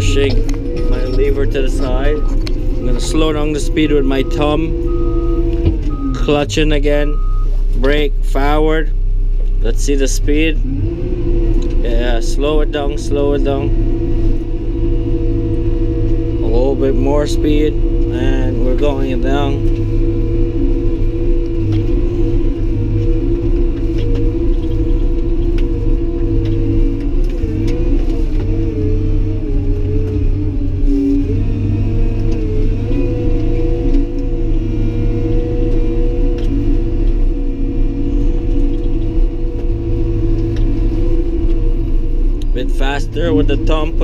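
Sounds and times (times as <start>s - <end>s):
bulldozer diesel engine rumbling: 0.0s - 44.0s.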